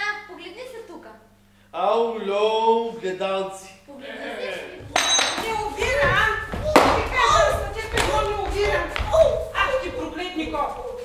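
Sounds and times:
actors speaking on stage: 0:01.7 - 0:11.0
sharp knocks: 0:04.9 - 0:10.2.

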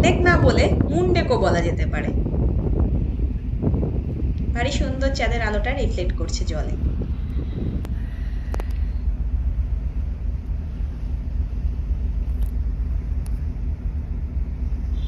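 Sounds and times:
rushing wake water: 0:00.0 - 0:15.0
ship engine running noise: 0:00.0 - 0:15.0
strong wind on microphone: 0:00.0 - 0:15.0
faint clicks: 0:07.3 - 0:08.9.

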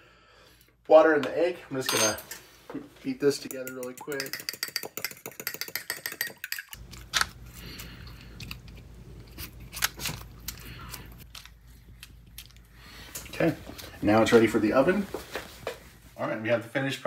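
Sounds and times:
utensil beating egg in bowl: 0:03.2 - 0:07.0
low steady hum: 0:06.5 - 0:17.0.

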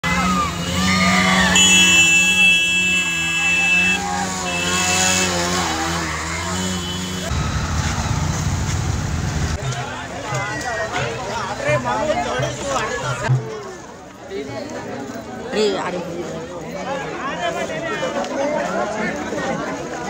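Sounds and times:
voices shouting: 0:00.0 - 0:08.4
motorcycles riding past: 0:00.0 - 0:11.6.

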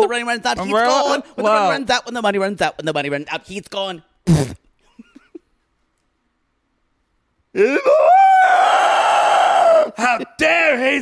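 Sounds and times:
man wailing: 0:07.6 - 0:10.0.

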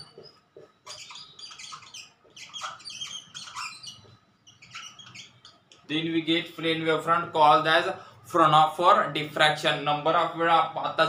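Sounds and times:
marker squeaking on whiteboard: 0:00.0 - 0:05.9.

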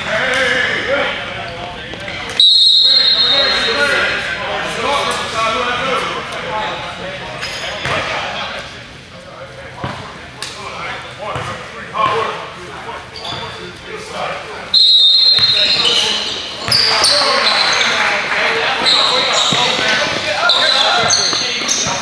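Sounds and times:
voices talking in gym: 0:00.0 - 0:22.0
sneakers squeaking on hardwood: 0:13.0 - 0:13.8, 0:14.8 - 0:22.0
basketball bouncing: 0:19.4 - 0:22.0.

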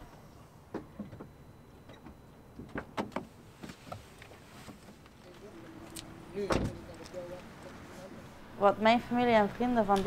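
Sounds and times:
car door slamming: 0:06.4 - 0:06.8.

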